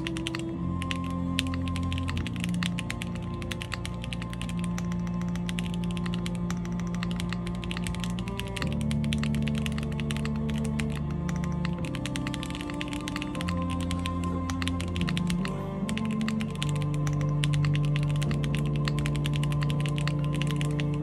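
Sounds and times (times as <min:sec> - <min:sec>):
mechanical keyboard typing: 0:00.0 - 0:21.0
song with low chords: 0:00.0 - 0:21.0.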